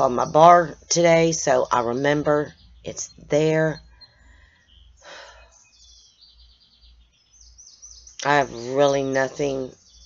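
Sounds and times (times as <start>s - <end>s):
high bird chirps: 0.0s - 10.0s.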